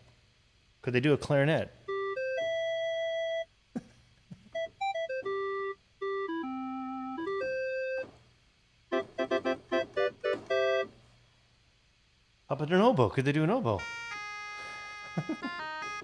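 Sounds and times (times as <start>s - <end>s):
synthesizer clarinet melody: 4.6s - 8.0s, 8.9s - 10.9s, 13.8s - 16.0s.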